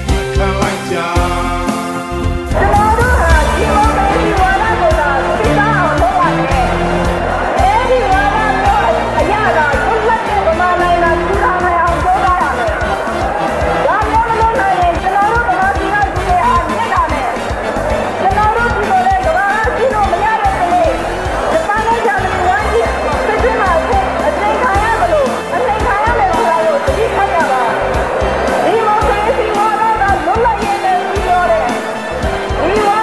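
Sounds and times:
instrumental backing with beat: 0:00.0 - 0:33.0
person singing: 0:00.1 - 0:06.7.

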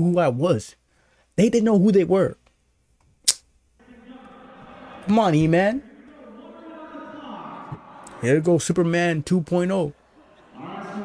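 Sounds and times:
sharp click: 0:03.2 - 0:03.5
murmur of gym crowd: 0:03.8 - 0:08.7, 0:10.0 - 0:11.0.

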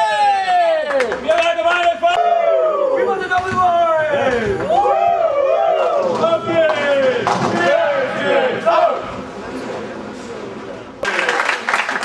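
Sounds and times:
spectators shouting and cheering: 0:00.0 - 0:09.2.

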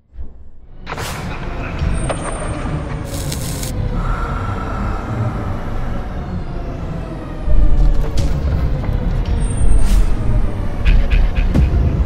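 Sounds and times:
heavy vehicle rumble: 0:01.3 - 0:12.0.

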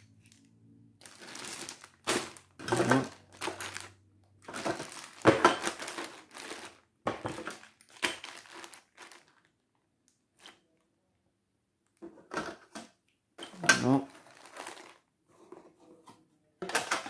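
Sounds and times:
plastic bags crinkling: 0:00.1 - 0:10.6, 0:13.8 - 0:15.1.

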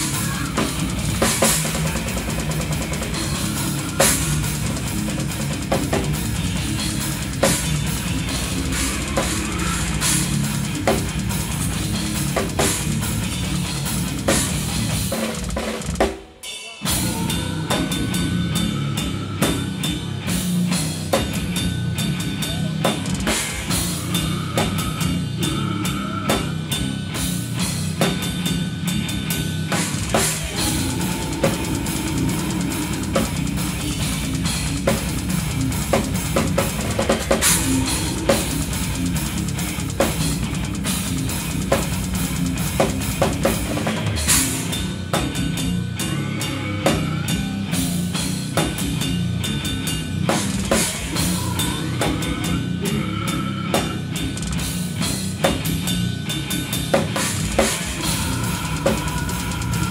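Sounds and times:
metal drumming on drum kit: 0:00.0 - 0:22.2, 0:29.6 - 0:46.0, 0:46.8 - 0:52.5, 0:53.7 - 0:59.9.

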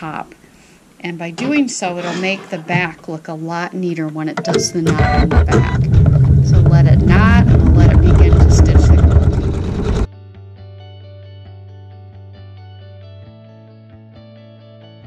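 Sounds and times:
embroidery machine stitching: 0:04.4 - 0:10.1
quiet guitar music: 0:10.1 - 0:15.0.

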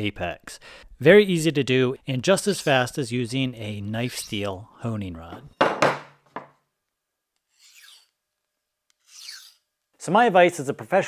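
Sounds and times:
knife scraping on honing rod: 0:04.0 - 0:04.5, 0:07.5 - 0:08.2, 0:08.9 - 0:09.7.

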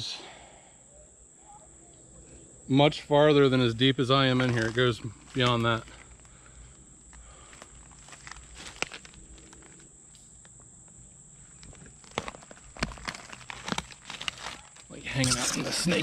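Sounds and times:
footsteps crunching dry leaves: 0:04.3 - 0:06.2, 0:07.4 - 0:09.8, 0:11.9 - 0:14.9.

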